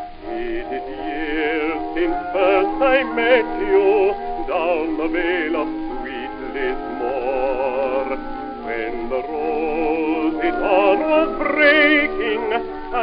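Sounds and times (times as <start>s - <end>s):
old gramophone ballad with orchestra: 0.0s - 13.0s.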